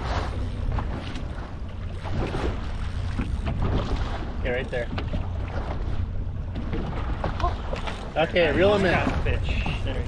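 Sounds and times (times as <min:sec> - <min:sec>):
boat engine rumble: 0:00.0 - 0:10.0.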